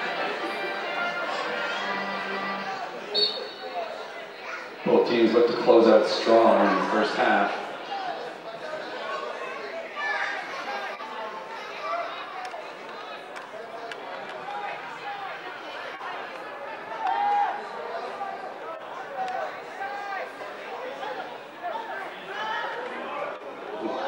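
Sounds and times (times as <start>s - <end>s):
loud shout: 9.1s - 12.6s, 14.4s - 20.4s.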